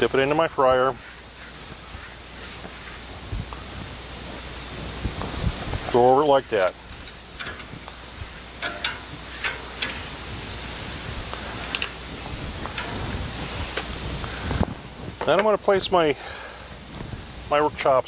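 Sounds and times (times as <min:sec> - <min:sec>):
paper towel wiping grill: 0:00.0 - 0:08.6
oil sizzling on hot grill: 0:00.0 - 0:18.0.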